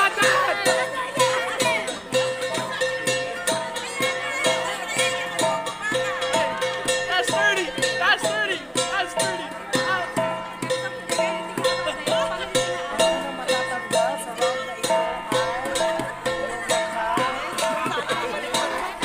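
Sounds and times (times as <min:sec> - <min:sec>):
drum beat: 0:00.0 - 0:19.0
people calling out: 0:00.0 - 0:19.0.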